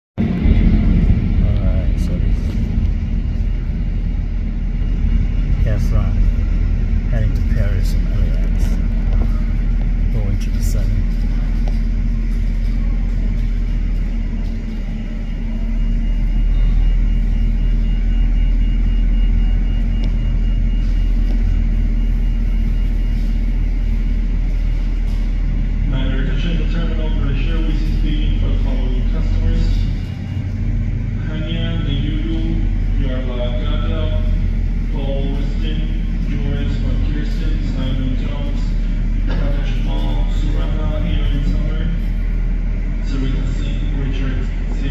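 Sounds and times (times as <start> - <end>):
jet engines rumbling: 0.2 - 44.9.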